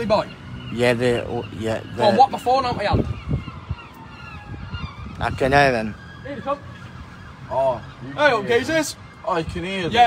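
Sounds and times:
distant police siren wailing: 0.0s - 10.0s.

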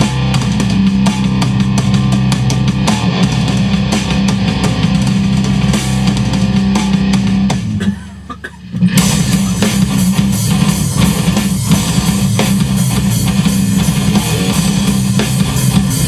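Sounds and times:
rock band with guitar and drums: 0.0s - 16.0s.

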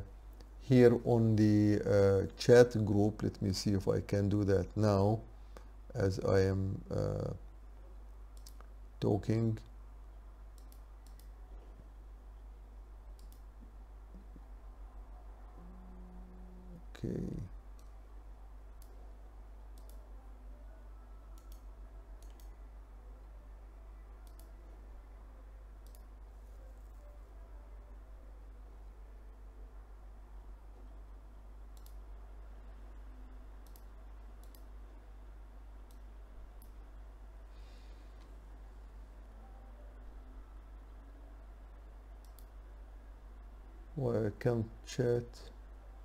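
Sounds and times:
low steady hum: 0.0s - 46.0s
computer mouse clicks: 8.3s - 8.7s, 10.5s - 11.4s, 13.1s - 14.3s, 17.8s - 18.0s, 19.7s - 20.0s, 21.3s - 22.6s, 24.2s - 24.6s, 25.8s - 26.1s, 31.7s - 32.1s, 33.6s - 34.7s, 35.8s - 36.8s, 42.2s - 42.6s.

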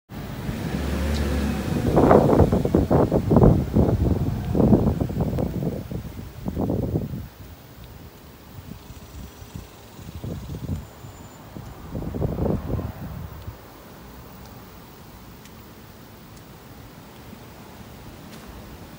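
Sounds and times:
wind buffeting microphone: 0.2s - 15.4s.

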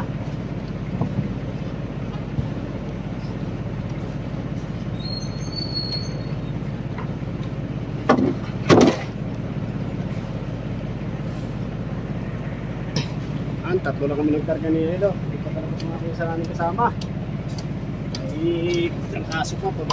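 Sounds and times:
engine drone: 0.0s - 19.9s.

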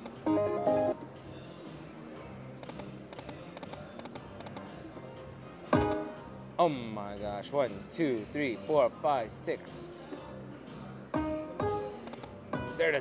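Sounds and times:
slot machine win jingle: 0.2s - 1.0s.

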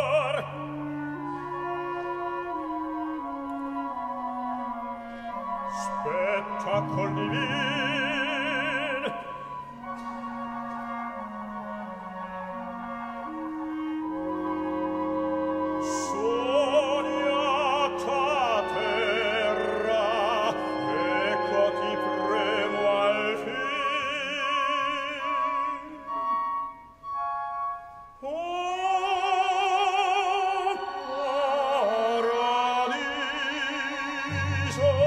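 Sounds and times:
clarinet slow melody: 0.0s - 35.0s
orchestral flutes and woodwinds: 0.0s - 35.0s.

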